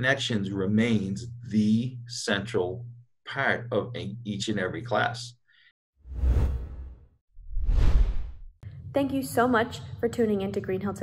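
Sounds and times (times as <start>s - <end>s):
whoosh sound effects: 6.1s - 8.5s.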